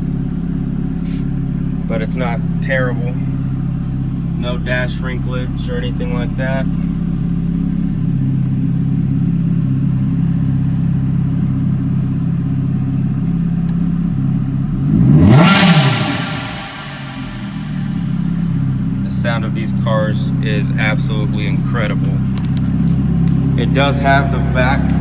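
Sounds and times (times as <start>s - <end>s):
car engine idling: 0.0s - 25.0s
engine throttle blip: 14.9s - 25.0s.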